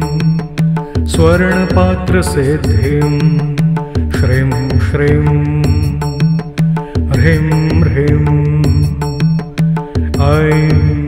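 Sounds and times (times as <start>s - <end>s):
percussion strikes: 0.0s - 11.0s
sustained instrumental backing: 0.0s - 11.0s.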